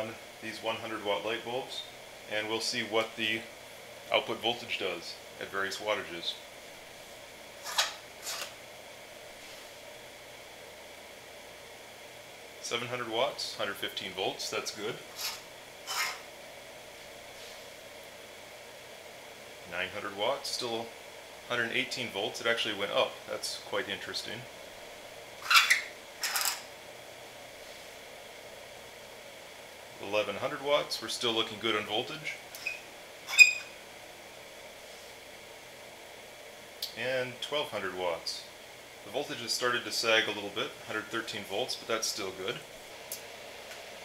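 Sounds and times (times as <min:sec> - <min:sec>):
faint steady hiss: 0:00.0 - 0:44.0
light bulb scraping into socket: 0:15.2 - 0:16.2.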